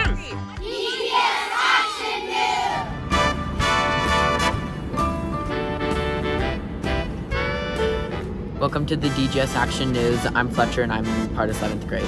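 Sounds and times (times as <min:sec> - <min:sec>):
children cheering together: 0:00.6 - 0:02.9.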